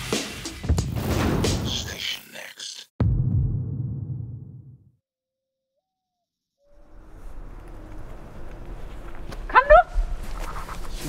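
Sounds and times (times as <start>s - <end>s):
low outdoor rumble: 6.8s - 11.0s
dog whining yelp: 9.5s - 10.0s.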